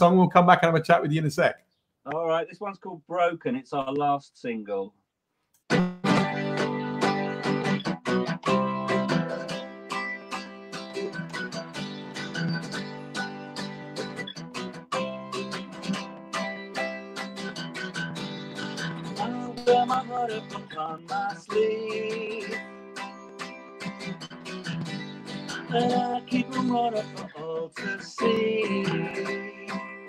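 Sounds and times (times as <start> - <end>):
acoustic guitar strumming: 5.7 - 30.0.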